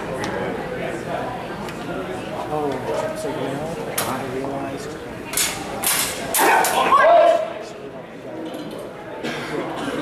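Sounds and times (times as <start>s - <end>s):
person shouting: 6.4s - 7.5s.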